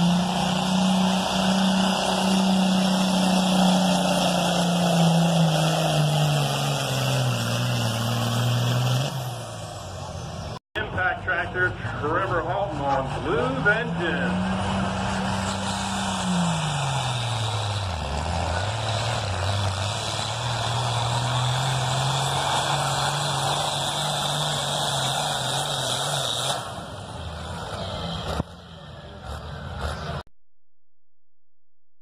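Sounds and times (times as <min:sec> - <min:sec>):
tractor engine at full throttle: 0:00.0 - 0:30.2.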